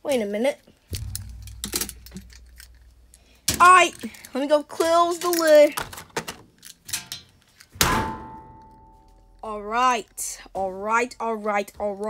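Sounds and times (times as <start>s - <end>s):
low rumble: 0.9s - 4.2s.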